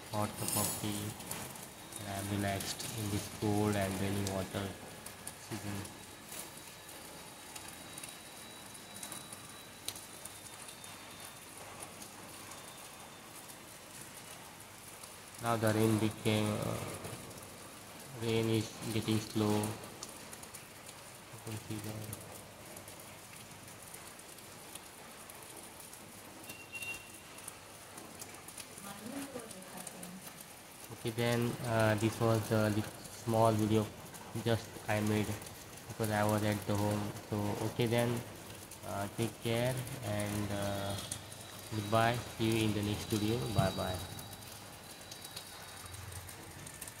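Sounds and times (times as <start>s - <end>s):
light rain patter: 0.0s - 47.0s.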